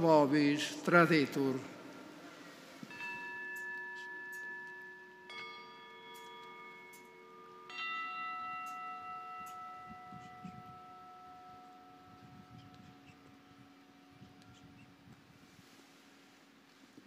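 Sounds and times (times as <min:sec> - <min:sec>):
bell ringing: 0:02.9 - 0:13.2.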